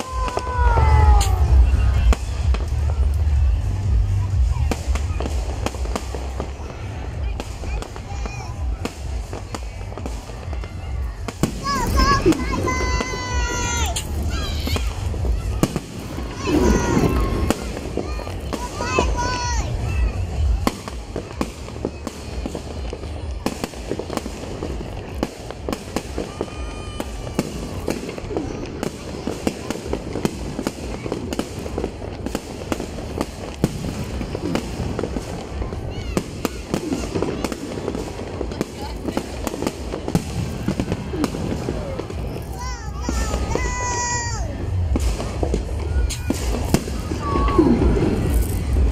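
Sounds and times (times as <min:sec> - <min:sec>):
fireworks bangs and crackling: 0:00.0 - 0:48.9.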